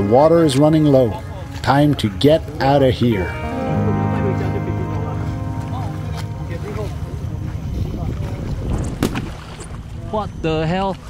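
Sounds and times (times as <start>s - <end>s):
water sloshing: 5.2s - 10.1s
wind rumble on microphone: 7.2s - 11.0s.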